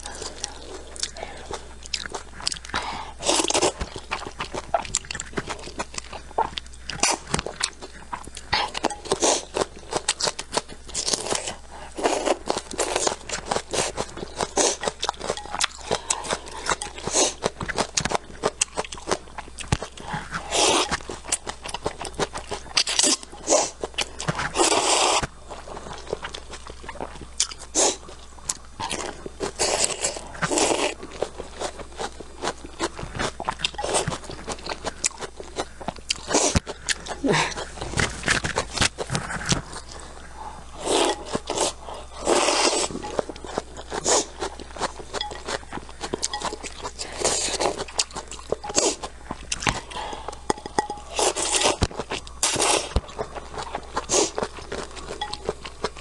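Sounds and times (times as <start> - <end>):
slurping noodles: 40.8 - 43.0.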